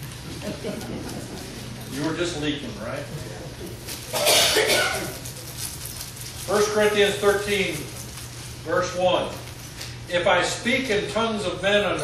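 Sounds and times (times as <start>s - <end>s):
person coughing harshly: 4.1s - 5.2s.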